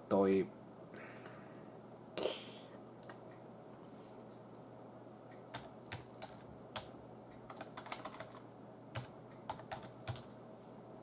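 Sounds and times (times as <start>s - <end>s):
computer keyboard typing: 5.5s - 10.3s.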